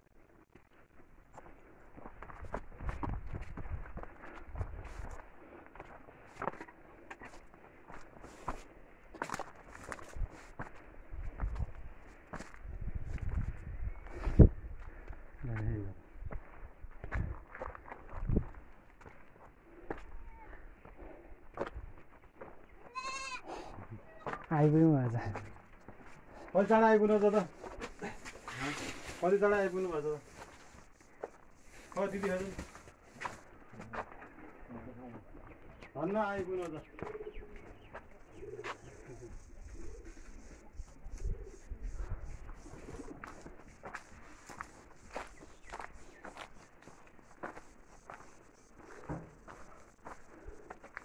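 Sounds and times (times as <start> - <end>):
goat bleating: 22.8 - 23.5
bird cooing: 37.0 - 40.4.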